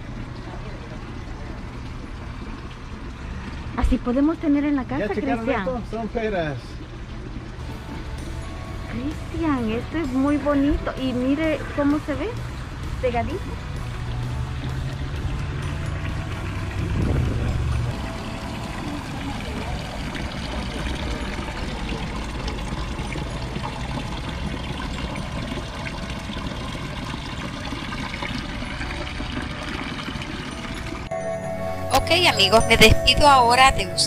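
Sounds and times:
fountain water splashing: 0:00.0 - 0:31.2
low rumble: 0:07.6 - 0:25.5.

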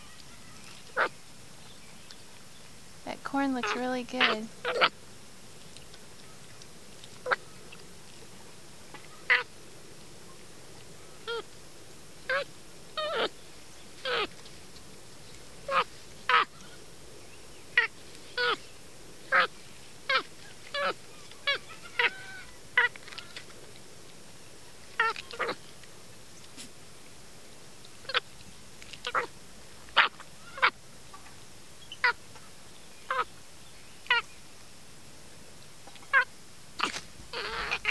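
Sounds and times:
monkey making high calls: 0:03.6 - 0:05.0, 0:09.1 - 0:09.5, 0:12.3 - 0:13.3, 0:14.0 - 0:14.3, 0:15.7 - 0:16.6, 0:17.8 - 0:18.6, 0:19.3 - 0:19.5, 0:20.1 - 0:23.3, 0:25.0 - 0:25.6, 0:28.0 - 0:28.2, 0:29.0 - 0:29.3, 0:30.0 - 0:30.8, 0:33.1 - 0:33.3, 0:36.0 - 0:37.9.

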